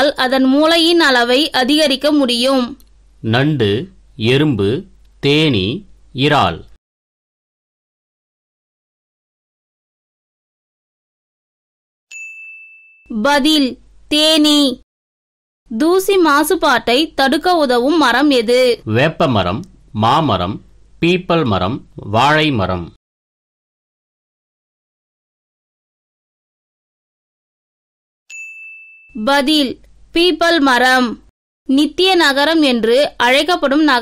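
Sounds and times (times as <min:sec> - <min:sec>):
bright ding: 0:12.1 - 0:13.1, 0:28.3 - 0:29.2.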